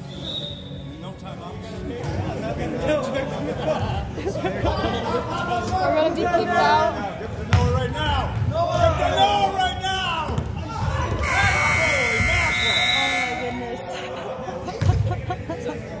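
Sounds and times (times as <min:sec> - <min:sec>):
players shouting: 0:08.6 - 0:13.9
scoreboard buzzer tone: 0:11.2 - 0:13.6.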